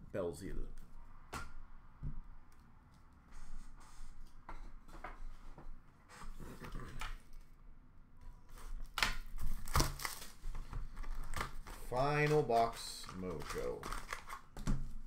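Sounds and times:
plastic wrappers rustling: 0:09.4 - 0:14.6.

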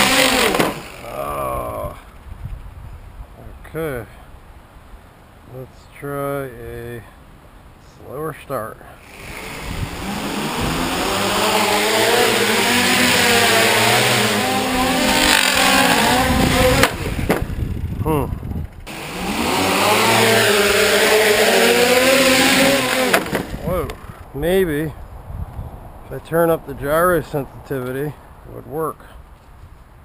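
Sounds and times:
drone propellers whirring: 0:00.0 - 0:01.8, 0:09.0 - 0:24.2.

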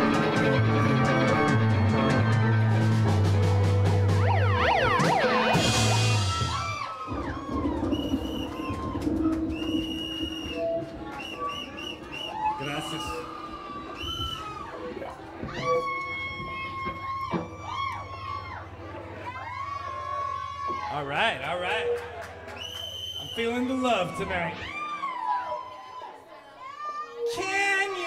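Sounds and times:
rock band final chord: 0:00.0 - 0:06.8
audience cheering and whistling: 0:04.1 - 0:21.0, 0:21.7 - 0:27.4
audience clapping: 0:06.7 - 0:12.7, 0:21.4 - 0:23.8.

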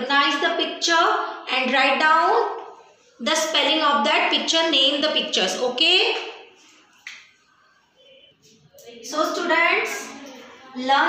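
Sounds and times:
woman speaking: 0:00.0 - 0:06.5, 0:08.8 - 0:11.0.

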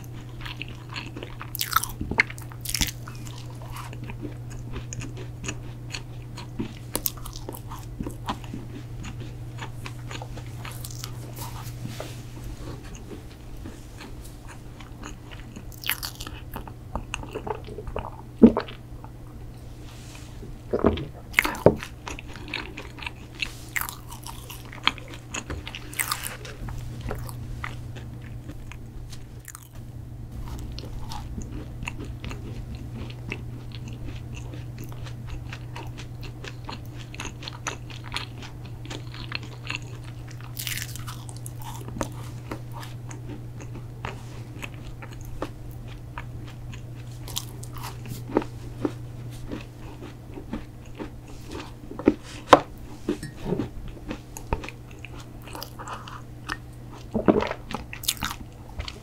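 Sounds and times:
crunching and chewing cookie: 0:00.0 - 0:19.4, 0:20.0 - 0:59.0
steady low hum: 0:00.0 - 0:59.0.

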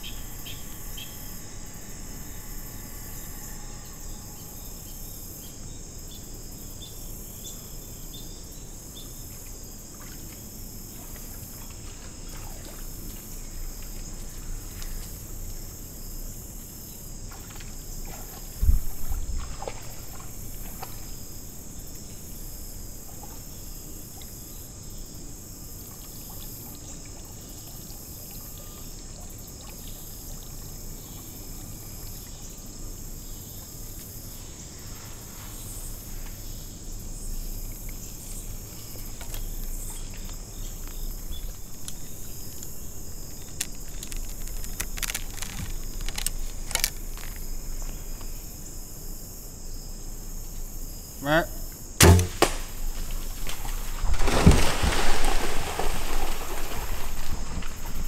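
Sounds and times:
crickets and insects chirping: 0:00.0 - 0:58.0.

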